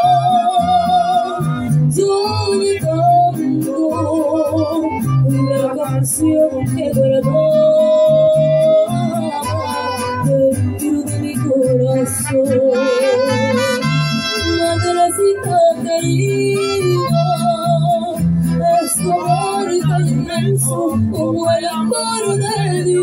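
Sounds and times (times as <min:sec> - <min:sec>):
strummed guitar chords: 0:00.0 - 0:23.0
saxophone melody with vibrato: 0:11.9 - 0:15.5, 0:16.3 - 0:17.6.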